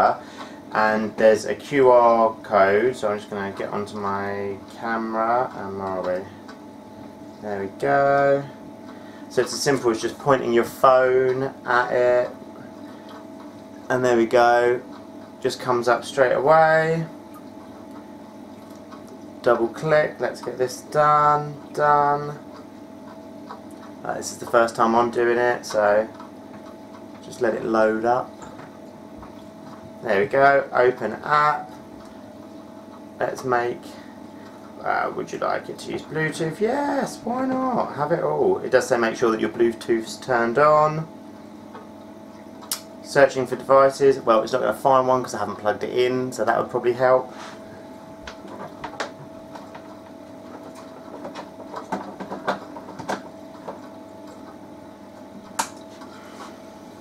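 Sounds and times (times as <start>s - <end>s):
circulating water and pump: 0.0s - 57.0s
faint steady hum: 0.0s - 57.0s
sharp click: 42.6s - 42.9s, 55.6s - 55.9s.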